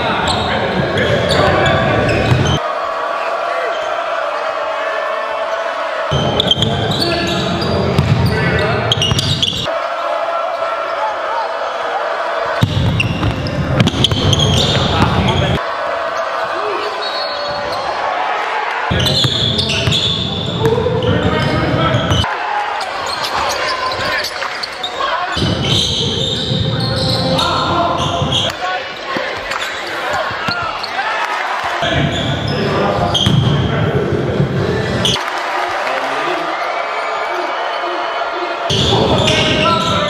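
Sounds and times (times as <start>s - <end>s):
voices: 0.0s - 40.0s.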